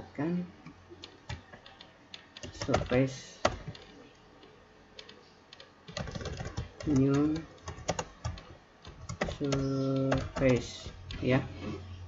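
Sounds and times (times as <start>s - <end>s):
computer keyboard typing: 1.0s - 11.5s.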